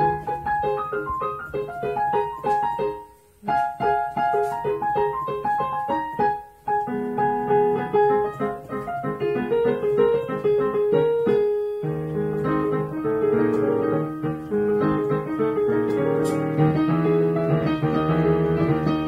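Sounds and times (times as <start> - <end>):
low piano bass notes: 0.0 - 19.0
piano notes: 0.0 - 19.0.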